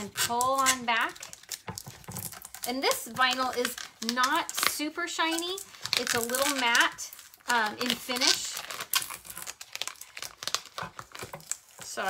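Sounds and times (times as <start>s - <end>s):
tape peeling and crackling: 0.0s - 12.0s.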